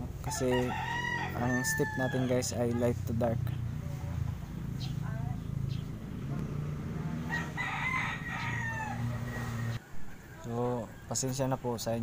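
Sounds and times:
rooster crowing: 0.2s - 2.6s, 7.2s - 11.1s.

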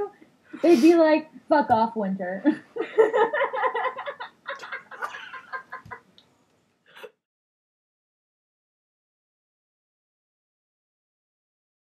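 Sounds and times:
women laughing: 2.4s - 6.0s.

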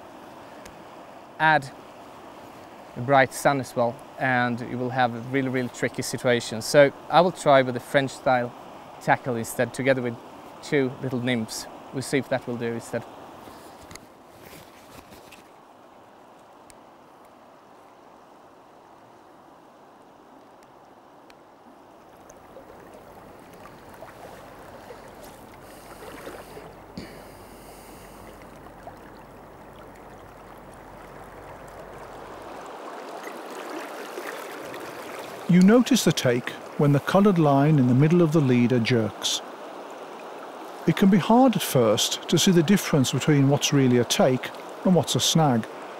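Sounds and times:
river flowing: 0.0s - 45.9s
wader moving through water: 21.7s - 45.9s.

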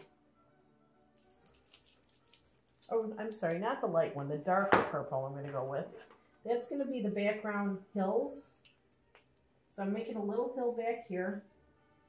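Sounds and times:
paint marker ball rattling: 1.2s - 2.9s.

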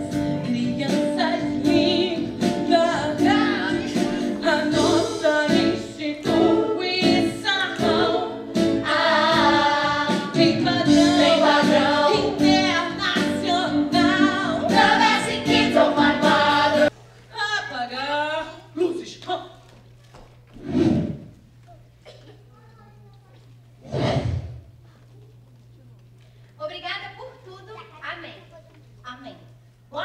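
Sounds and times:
backing music with steady beat: 0.0s - 16.9s.

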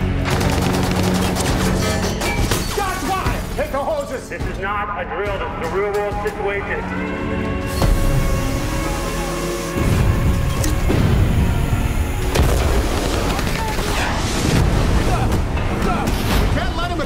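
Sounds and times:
dramatic trailer music: 0.0s - 17.0s.

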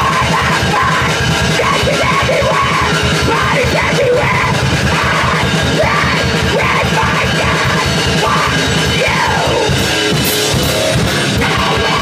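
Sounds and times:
person screaming vocals: 0.0s - 9.8s, 11.3s - 12.0s
distorted guitar: 0.0s - 12.0s
fast drumming: 0.0s - 12.0s.

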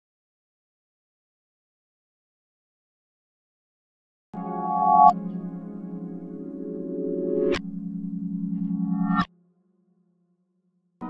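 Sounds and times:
synth tone with overtones: 4.4s - 10.2s.

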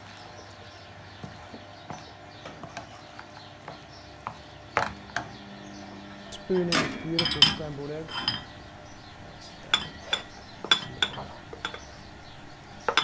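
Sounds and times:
pan knocking on hob grate: 6.4s - 13.0s.

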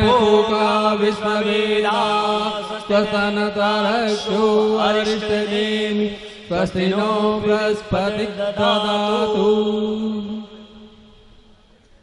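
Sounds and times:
person chanting in sung line: 0.0s - 11.7s.

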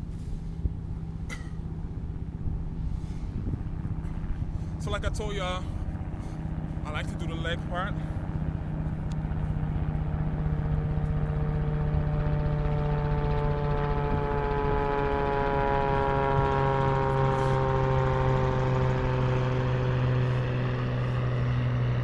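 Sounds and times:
aircraft engine drone: 0.0s - 22.0s.

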